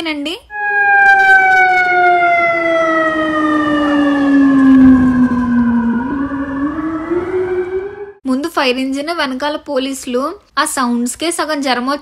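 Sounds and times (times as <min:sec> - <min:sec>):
fire truck siren: 0:00.5 - 0:08.2.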